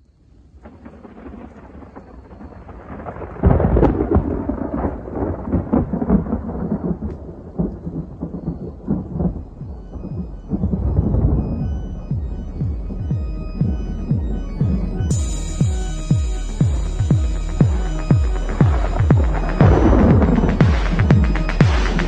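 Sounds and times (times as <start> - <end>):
rain: 0.0 - 13.1, 13.8 - 22.0
rolling thunder: 0.6 - 22.0.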